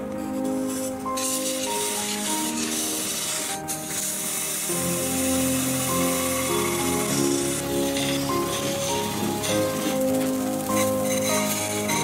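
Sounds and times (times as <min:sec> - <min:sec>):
lathe gouge cutting hiss: 0:00.0 - 0:12.0
slow background music: 0:00.0 - 0:12.0.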